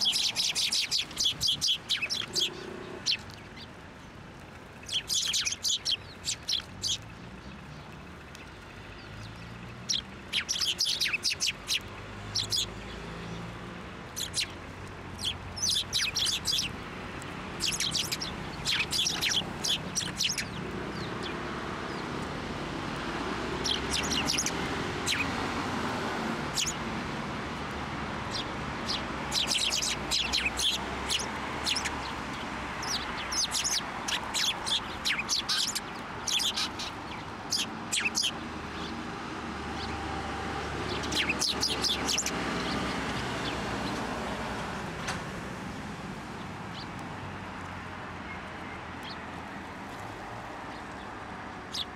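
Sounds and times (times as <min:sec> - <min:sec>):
sparrows chirping: 0:00.0 - 0:44.9, 0:45.7 - 0:51.9.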